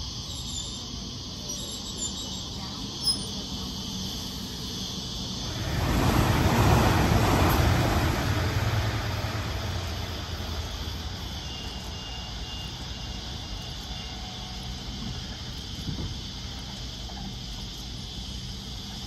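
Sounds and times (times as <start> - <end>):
electric train passing: 0.0 - 19.0.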